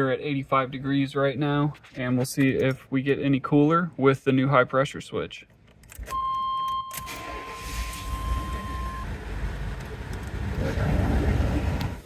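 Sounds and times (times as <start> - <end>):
high beep: 6.1 - 9.1
pickup truck engine rumbling: 7.6 - 12.0.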